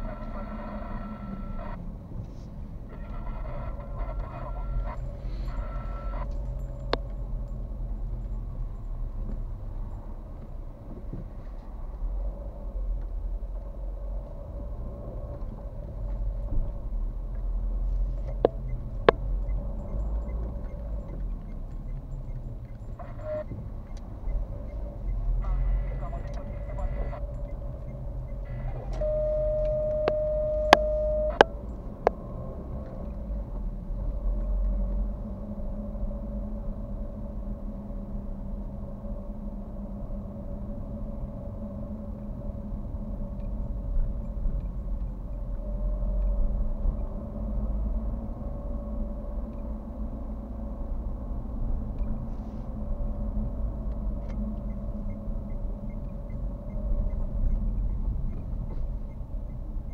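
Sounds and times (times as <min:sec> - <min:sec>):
steady tone: 0:00.0 - 0:01.9, 0:02.8 - 0:08.6, 0:18.2 - 0:33.3
engine and tyre rumble: 0:00.0 - 0:59.9.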